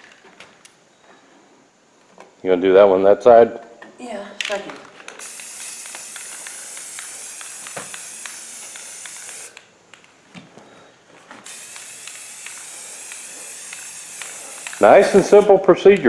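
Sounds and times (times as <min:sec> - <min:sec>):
aerosol spray paint hissing: 0:05.2 - 0:09.6, 0:11.4 - 0:15.6.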